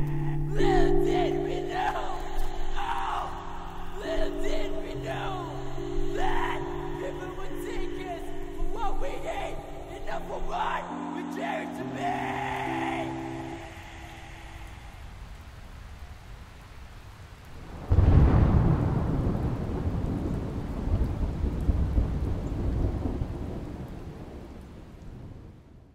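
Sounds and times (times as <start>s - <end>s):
steady rain: 0.0s - 11.1s, 11.8s - 25.9s
music chord: 0.0s - 15.1s
thunder clap rolling: 17.6s - 25.8s.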